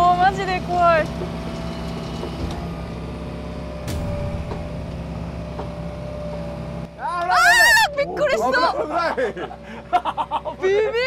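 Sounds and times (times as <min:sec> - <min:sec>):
excavator diesel engine running: 0:00.0 - 0:11.0.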